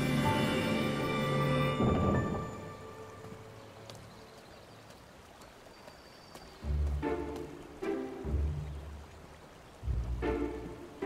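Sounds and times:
flowing water: 0.0s - 11.0s
light ticks: 3.8s - 7.6s.

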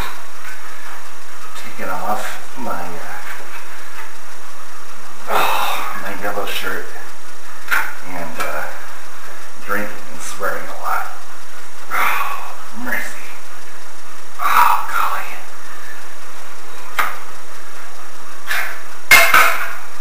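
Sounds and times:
person making vocal sounds: 5.2s - 6.2s, 11.9s - 13.3s, 14.4s - 15.5s.

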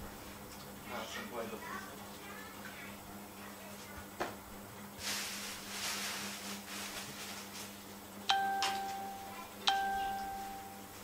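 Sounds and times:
bell-like chimes: 8.3s - 10.9s.

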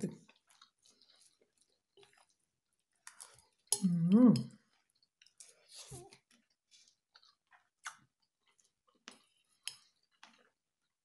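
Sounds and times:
soft chewing: 0.0s - 11.0s.

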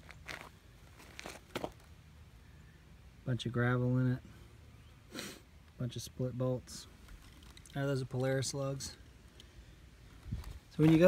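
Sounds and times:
faint scuffs and rustles: 0.0s - 1.9s, 10.0s - 11.0s.

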